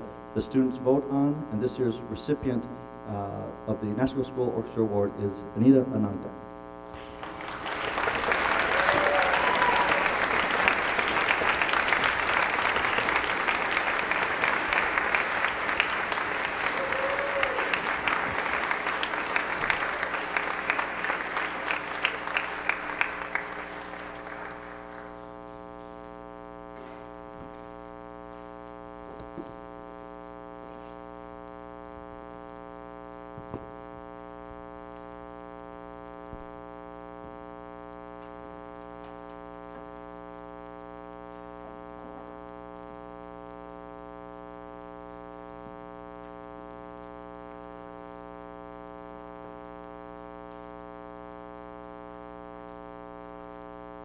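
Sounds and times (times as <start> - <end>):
electrical hum: 0.0 - 54.0
audience applauding: 7.0 - 25.4.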